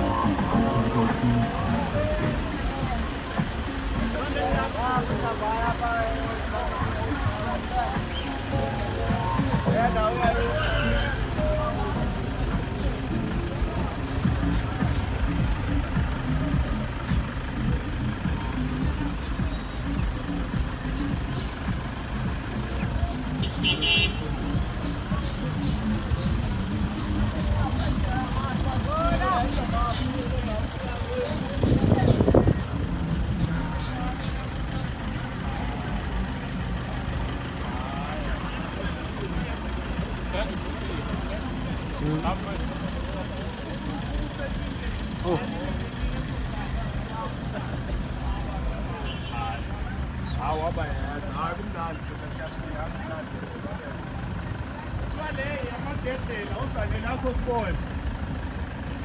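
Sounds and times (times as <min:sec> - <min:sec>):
music: 0:00.0 - 0:49.1
minibus engines running: 0:00.0 - 0:59.0
voices: 0:00.0 - 0:59.0.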